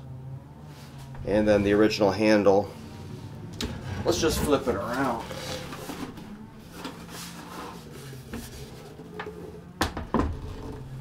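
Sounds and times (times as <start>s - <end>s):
amp cabinet handling rustle: 1.0s - 11.0s.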